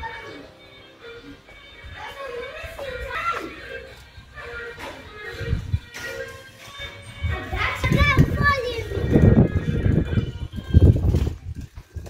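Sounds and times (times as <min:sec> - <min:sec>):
background music with low thumping: 0:00.0 - 0:12.0.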